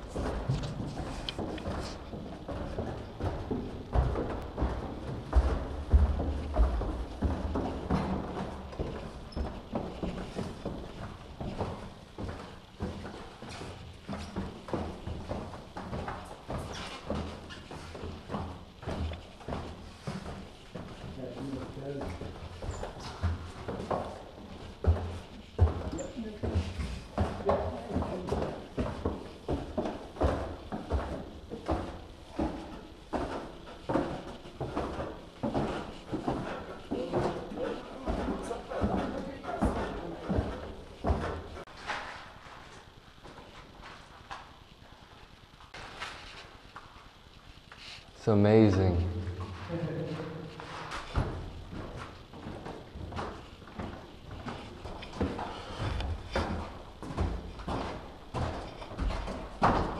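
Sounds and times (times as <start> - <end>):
footsteps walking: 0.0 - 59.9.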